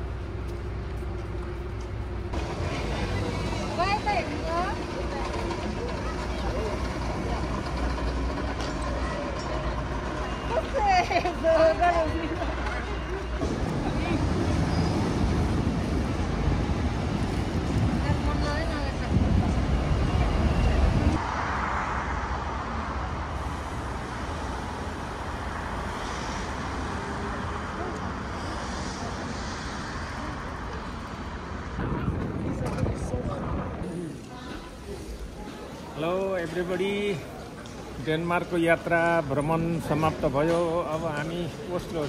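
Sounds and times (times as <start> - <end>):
traffic: 0.0 - 42.0
distant voices: 0.1 - 21.2
heavy low rumble: 12.5 - 34.3.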